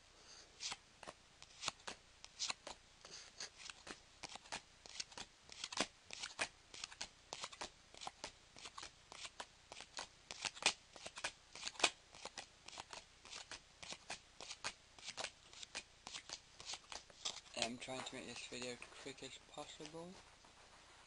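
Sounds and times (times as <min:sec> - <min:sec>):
trading cards flicking: 0:03.6 - 0:18.7.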